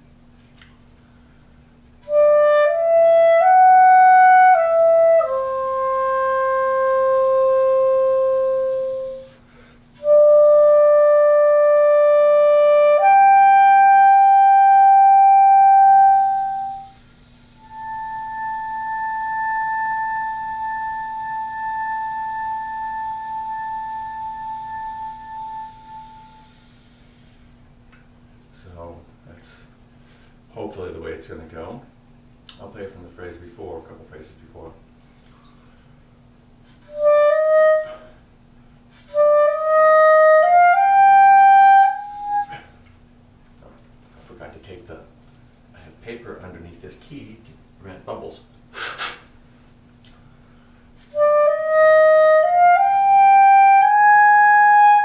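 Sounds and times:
solo clarinet playing: 2.0 - 27.4, 36.6 - 38.3, 38.9 - 42.8, 51.0 - 55.0.

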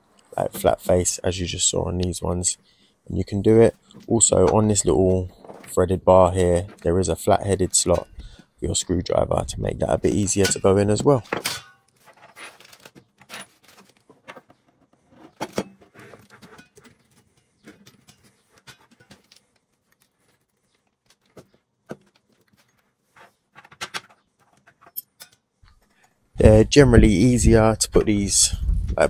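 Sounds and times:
plastic packaging rustling: 11.9 - 24.6.

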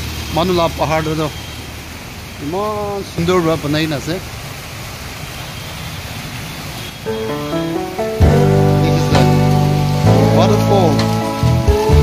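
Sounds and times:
fountain splashing into basin: 0.0 - 12.0
music with held notes: 7.1 - 12.0.

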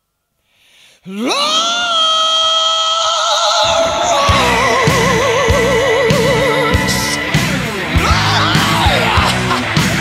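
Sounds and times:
drums and bass: 4.0 - 10.0.

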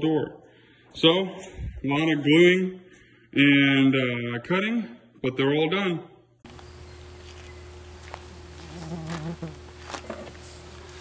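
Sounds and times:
steady hum: 6.5 - 11.0.

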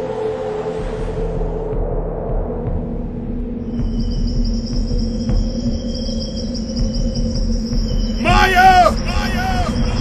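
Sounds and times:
insects chirping: 3.2 - 10.0.

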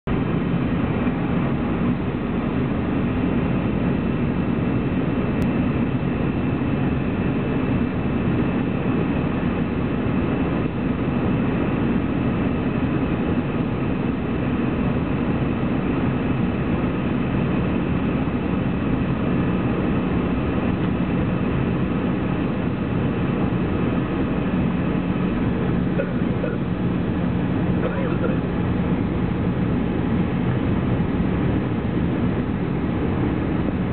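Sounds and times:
jet engine and airflow noise: 0.0 - 33.9
low hum: 0.0 - 33.9.

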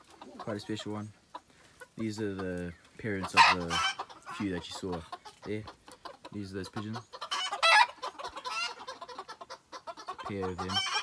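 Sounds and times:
chickens calling and clucking: 0.0 - 11.0.

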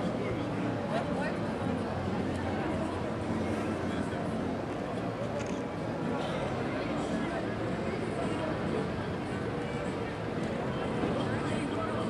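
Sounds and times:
outdoor street noise: 0.0 - 12.0.

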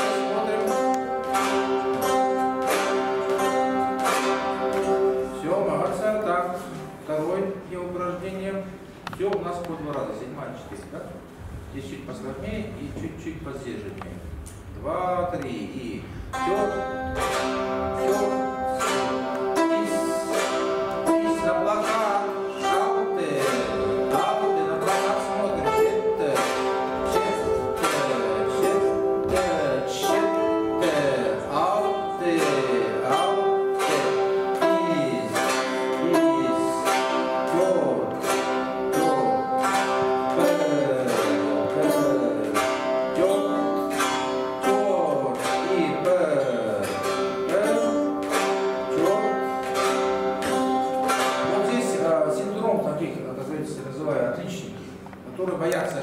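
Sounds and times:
plucked zithers: 0.0 - 56.0.

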